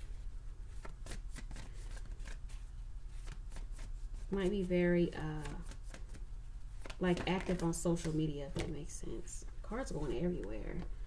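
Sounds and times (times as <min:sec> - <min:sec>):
steady low hum: 0:00.0 - 0:11.0
cards being shuffled: 0:00.7 - 0:08.8.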